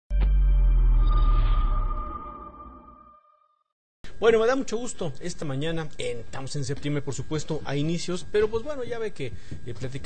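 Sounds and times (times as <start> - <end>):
high steady synth tone: 0.1 - 3.5
ringing synth tones: 0.1 - 3.6.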